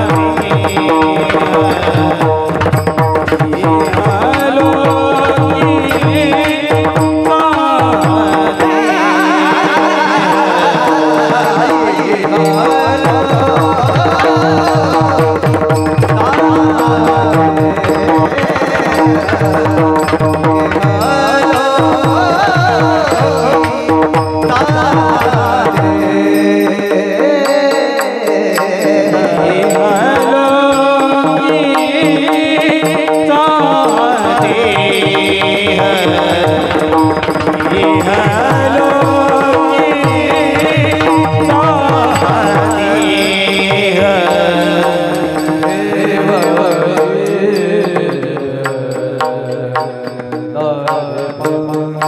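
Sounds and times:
man singing a gliding melody: 0.0 - 52.0.

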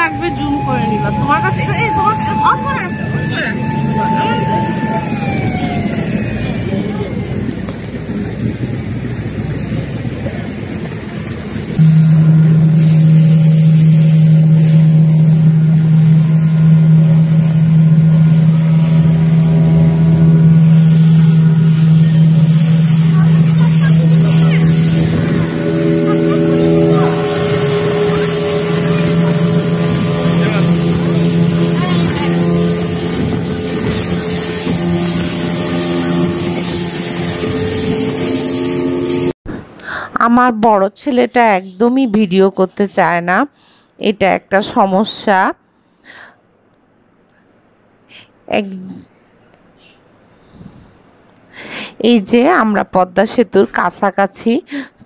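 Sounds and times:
wind and water rushing: 0.0 - 39.8
speedboat engine droning: 0.0 - 40.0.

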